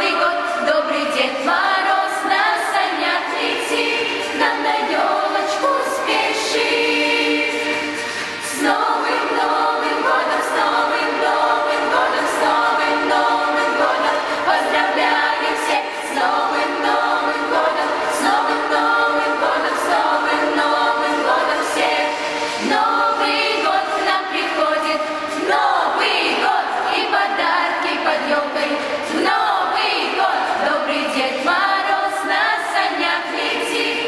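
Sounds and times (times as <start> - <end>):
girls' choir singing: 0.0 - 34.0.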